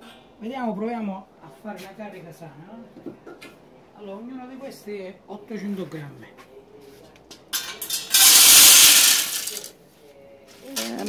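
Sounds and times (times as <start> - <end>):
wood pellets pouring into metal: 7.8 - 9.7.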